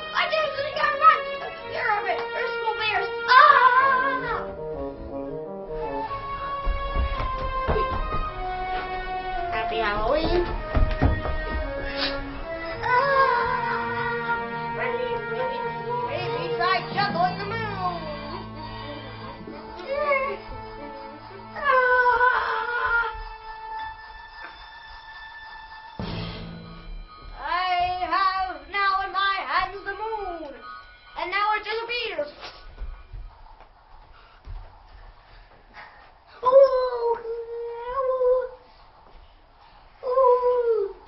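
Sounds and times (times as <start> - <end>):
background music: 0.0 - 35.4
child making ooo calls: 3.3 - 4.6, 12.8 - 16.7, 21.6 - 23.3, 36.4 - 38.6, 40.0 - 41.0.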